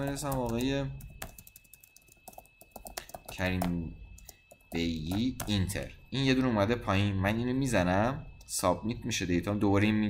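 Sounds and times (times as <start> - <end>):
typing on computer keyboard: 0.0 - 5.7.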